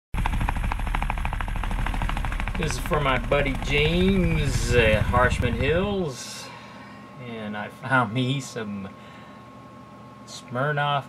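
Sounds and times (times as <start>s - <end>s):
helicopter rotor chop: 0.2s - 6.2s
low engine rumble: 0.2s - 6.2s.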